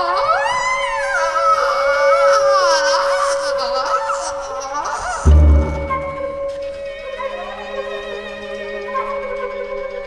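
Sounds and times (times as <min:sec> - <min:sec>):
ensemble holding a note: 0:05.3 - 0:06.7.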